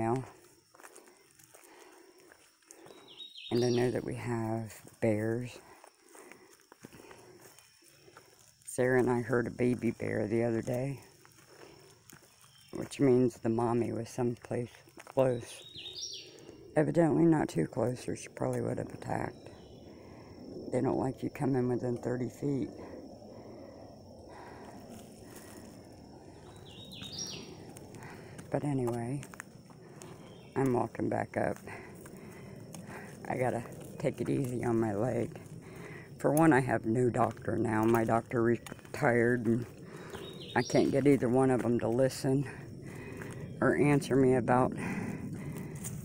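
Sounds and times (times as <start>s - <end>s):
footsteps on dirt trail: 0.0s - 46.0s
bird calling with rising notes: 26.2s - 27.8s.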